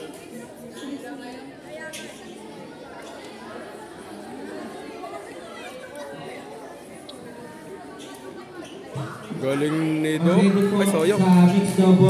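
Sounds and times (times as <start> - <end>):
crowd chatter in a hall: 0.0 - 12.0.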